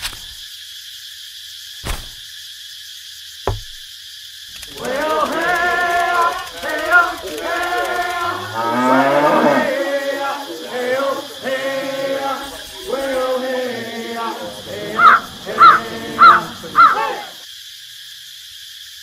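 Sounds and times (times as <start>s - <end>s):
steady hiss: 0.0s - 19.0s
sharp clicks: 4.5s - 8.4s
pitched vocal sounds wavering: 4.7s - 17.4s.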